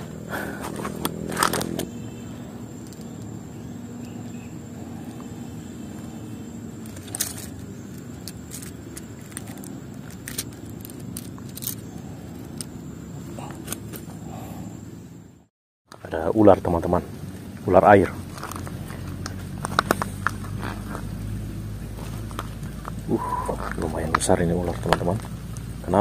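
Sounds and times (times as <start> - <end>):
clicks scrapes and rattles: 6.8 - 12.7.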